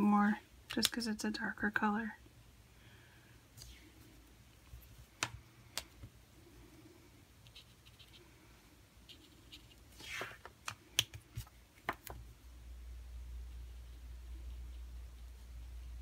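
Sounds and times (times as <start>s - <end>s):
scratchy rub: 7.4s - 8.4s, 9.0s - 10.5s.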